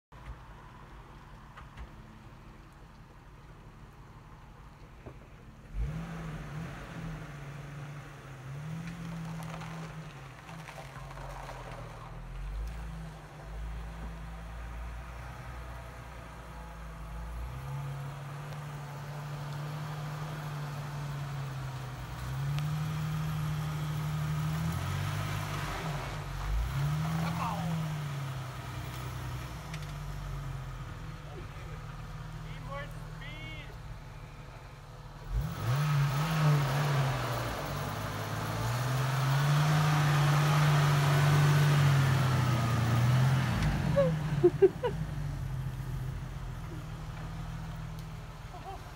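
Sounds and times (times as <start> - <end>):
tyres spinning in snow: 4.5 - 48.9
car engine revving: 5.6 - 34.4, 35.0 - 48.9.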